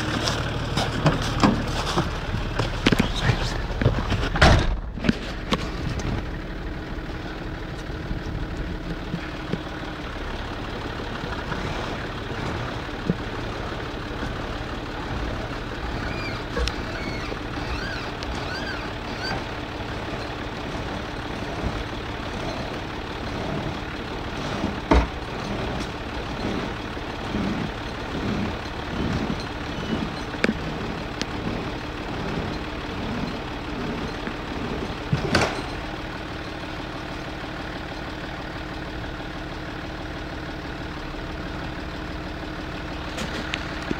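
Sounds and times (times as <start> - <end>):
diesel engine running: 0.0 - 43.9
winch knocking: 12.0 - 35.9.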